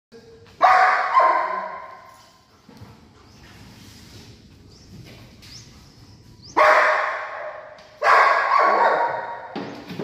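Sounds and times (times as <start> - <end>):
dog barking in echoing shed: 0.2 - 2.6, 6.3 - 9.9.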